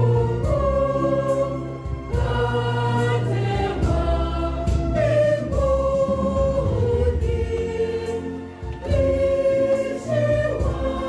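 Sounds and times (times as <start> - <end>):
choir singing a slow hymn: 0.0 - 11.0.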